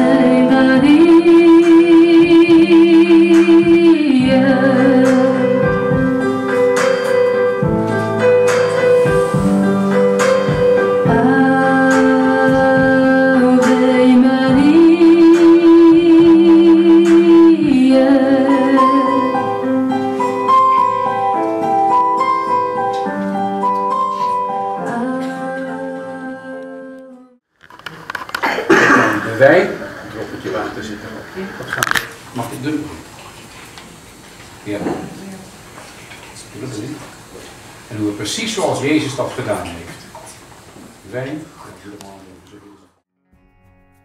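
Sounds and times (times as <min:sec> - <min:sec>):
woman singing into a microphone: 0:00.0 - 0:06.2, 0:10.9 - 0:20.0, 0:24.6 - 0:27.4
piano accompaniment: 0:00.0 - 0:27.0.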